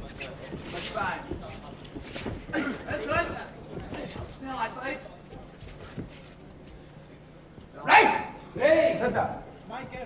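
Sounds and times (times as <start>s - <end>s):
person shouting: 7.8s - 9.0s.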